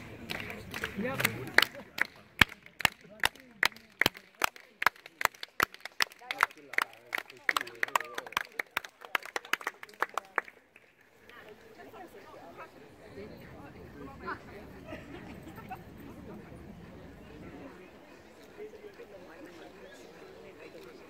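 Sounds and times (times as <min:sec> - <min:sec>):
hands clapping: 0:00.0 - 0:11.4
faint murmur of voices: 0:00.0 - 0:21.0.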